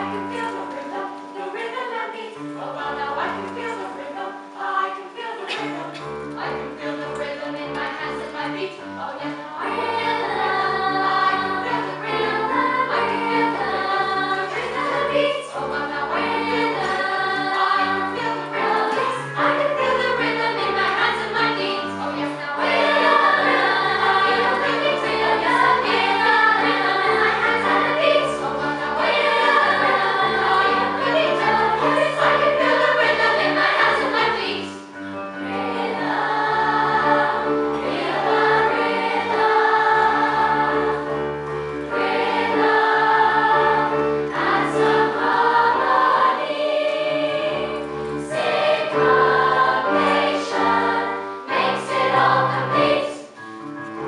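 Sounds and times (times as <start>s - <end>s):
girls' choir singing: 0.0s - 53.5s
keyboard accompaniment: 0.0s - 54.0s.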